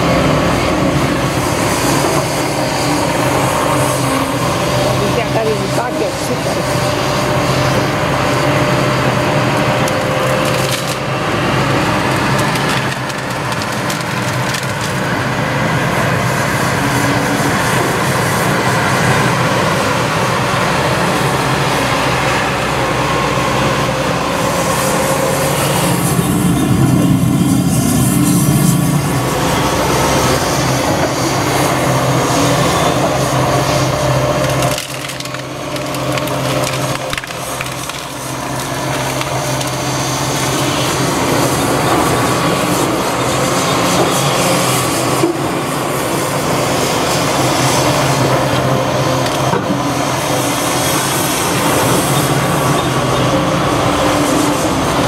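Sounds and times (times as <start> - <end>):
excavator diesel engine running: 0.0 - 55.0
wood cracking and splintering: 9.6 - 15.3, 33.6 - 43.5.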